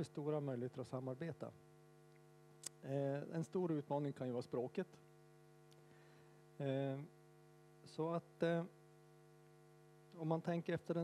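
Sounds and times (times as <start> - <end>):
electrical hum: 0.0 - 11.0
small click: 2.1 - 2.8.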